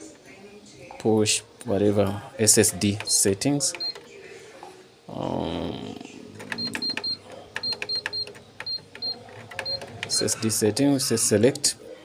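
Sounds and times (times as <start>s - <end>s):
control panel beeps: 2.9s - 4.0s, 6.4s - 10.5s.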